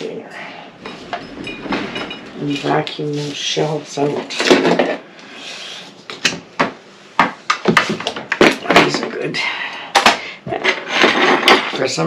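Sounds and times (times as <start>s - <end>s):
small tools clattering: 0.8s - 3.4s, 10.0s - 12.0s.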